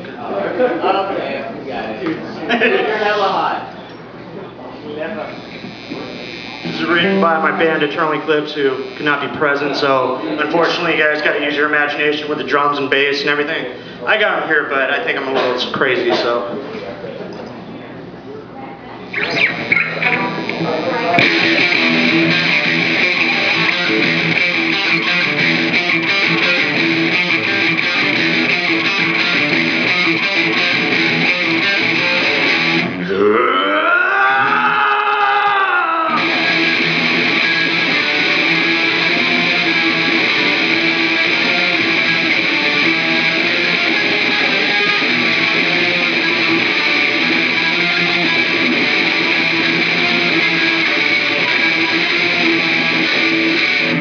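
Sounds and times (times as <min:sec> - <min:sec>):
distorted electric guitar riffing: 0:05.2 - 0:09.9, 0:19.1 - 0:54.0.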